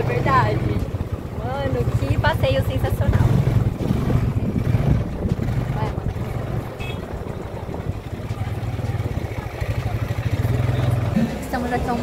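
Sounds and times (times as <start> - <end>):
quad bike engine running: 0.0 - 12.0.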